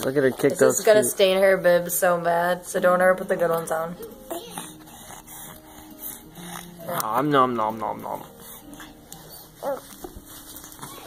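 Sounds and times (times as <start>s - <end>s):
baby whimpering squeak: 9.2s - 10.0s.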